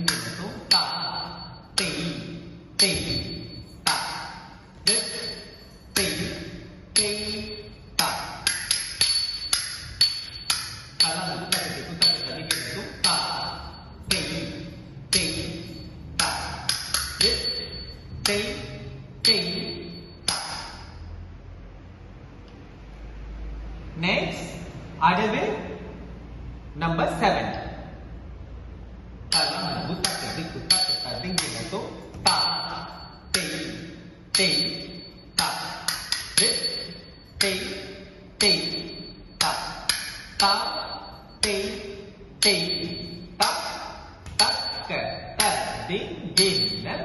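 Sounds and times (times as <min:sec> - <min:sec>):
person calling rhythm syllables: 0:00.0 - 0:21.0, 0:29.2 - 0:47.0
cymbals ringing: 0:00.0 - 0:21.1, 0:29.2 - 0:47.0.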